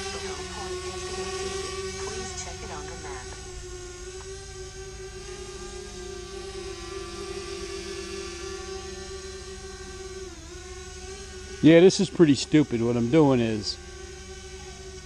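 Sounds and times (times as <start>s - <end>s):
drone propellers humming: 0.0s - 15.0s.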